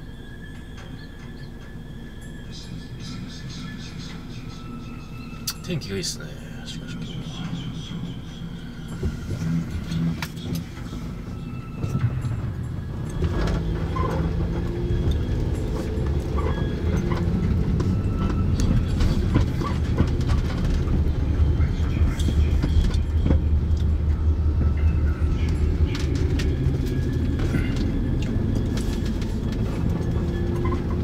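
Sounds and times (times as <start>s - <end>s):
car engine and road noise: 0.0s - 31.0s.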